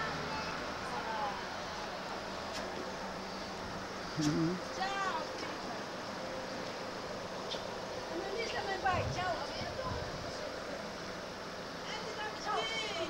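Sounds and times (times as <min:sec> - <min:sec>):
people talking: 0:04.2 - 0:05.3, 0:11.9 - 0:13.0.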